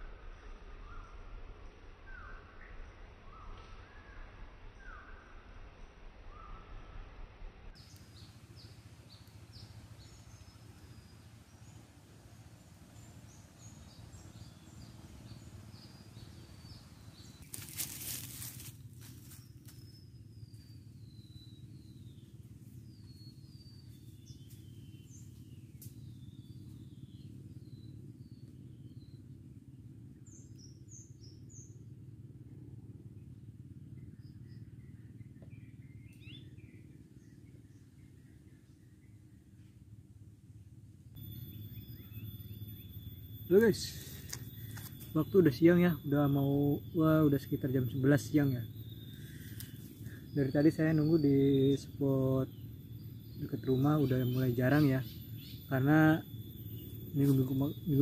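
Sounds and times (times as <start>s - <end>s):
birds calling and chirping: 7.8s - 40.2s, 41.2s - 58.0s.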